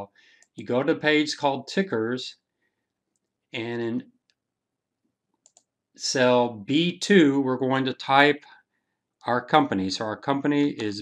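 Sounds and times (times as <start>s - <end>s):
faint computer mouse clicks: 5.4s - 5.7s.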